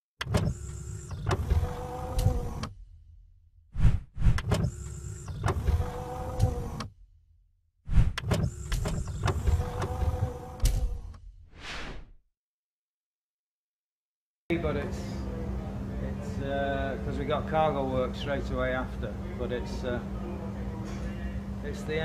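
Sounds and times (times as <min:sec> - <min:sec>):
motorised whirring hum: 0:00.2 - 0:03.0, 0:03.8 - 0:07.0, 0:08.1 - 0:11.2.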